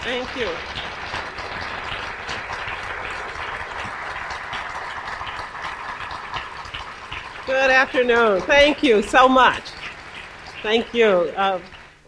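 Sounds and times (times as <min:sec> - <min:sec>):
audience applause: 0:00.0 - 0:12.0.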